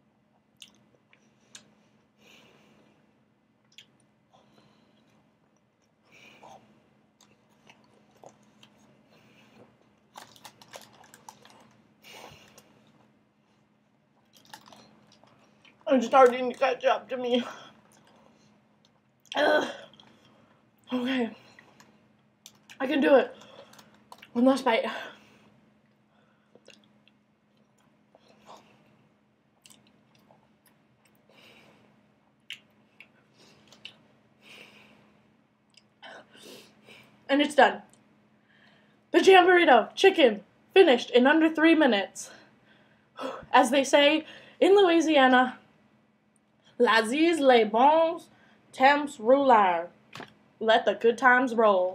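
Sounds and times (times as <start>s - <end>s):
faint steady hum: 0.0s - 51.9s
person chewing food: 4.9s - 15.8s, 17.7s - 20.6s, 23.4s - 24.4s, 25.8s - 29.0s, 29.6s - 31.3s, 32.2s - 34.0s.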